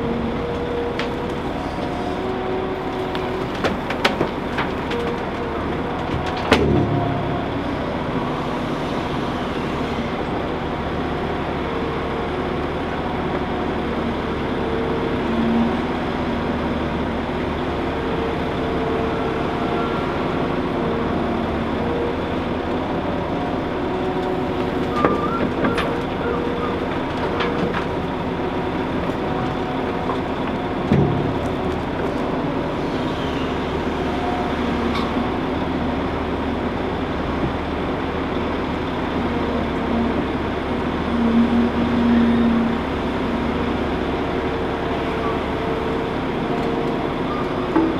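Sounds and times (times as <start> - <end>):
dumper truck engine running: 0.0 - 47.9
excavator engine and hydraulics: 0.0 - 47.9.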